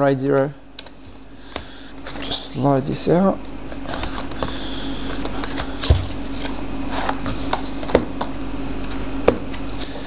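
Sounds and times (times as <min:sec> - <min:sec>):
steady low hum: 0:00.0 - 0:10.0
hands handling packaging: 0:03.7 - 0:08.0.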